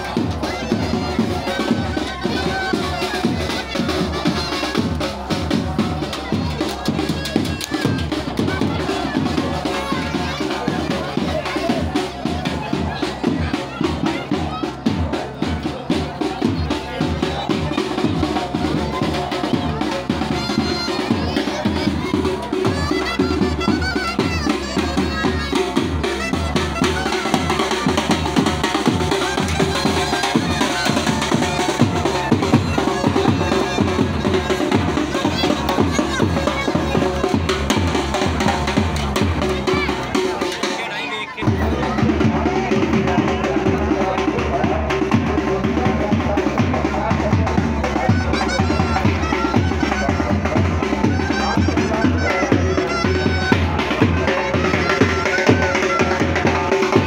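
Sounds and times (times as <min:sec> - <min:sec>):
crowd voices: 0:00.0 - 0:57.0
snare and bass drum beats: 0:00.0 - 0:57.0
bagpipes: 0:16.6 - 0:42.0, 0:47.4 - 0:57.0.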